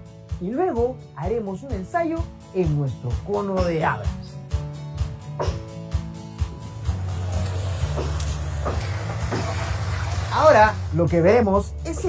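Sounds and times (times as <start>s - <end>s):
concrete mixer drum turning: 6.5s - 11.4s.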